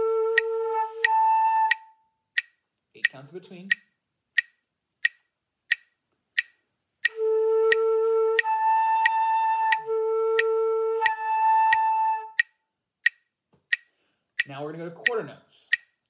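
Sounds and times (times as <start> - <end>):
flute playing slurred notes: 0.0 - 2.0, 7.0 - 12.5
metronome ticking: 0.0 - 16.0.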